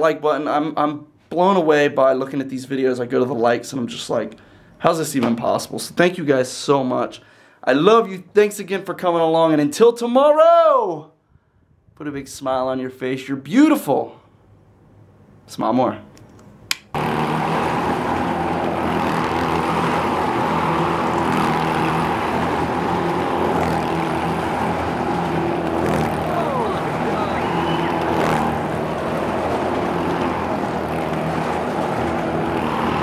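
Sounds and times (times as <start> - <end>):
motorcycle engines running: 17.0 - 33.0.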